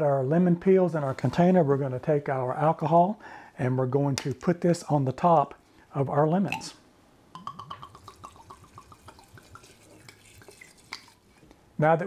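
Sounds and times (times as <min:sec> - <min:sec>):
liquid glugging from bottle: 0:07.4 - 0:11.2.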